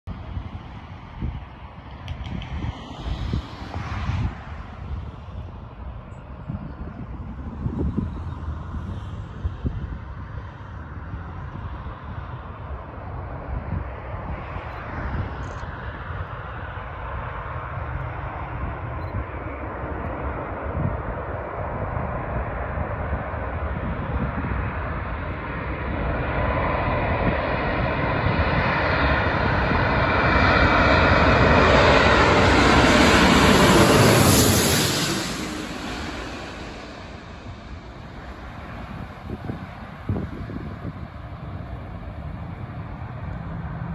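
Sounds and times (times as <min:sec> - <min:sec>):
jet airliner engines: 0:00.1 - 0:43.9.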